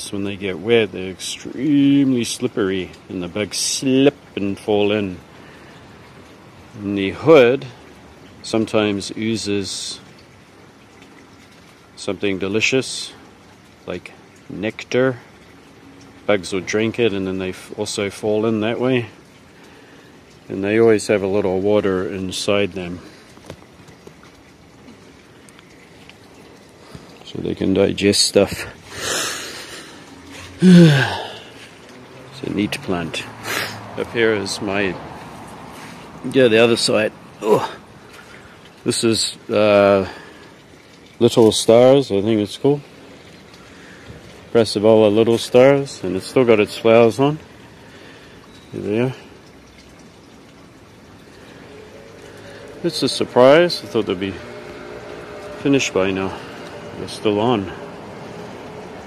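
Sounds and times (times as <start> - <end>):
faint outdoor background noise: 0.0 - 59.0
small clicks and ticks: 23.3 - 27.0
man speaking: 27.2 - 29.2, 30.6 - 31.4, 32.4 - 35.0, 36.2 - 37.8, 44.6 - 47.4, 52.8 - 54.4, 55.6 - 56.4.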